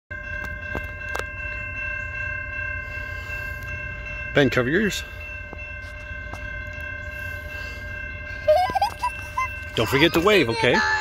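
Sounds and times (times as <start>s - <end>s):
low locomotive rumble: 0.1s - 11.0s.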